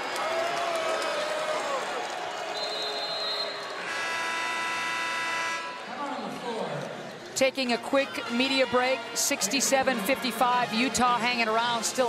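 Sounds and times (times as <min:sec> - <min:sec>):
arena horn blast: 0:03.8 - 0:05.9.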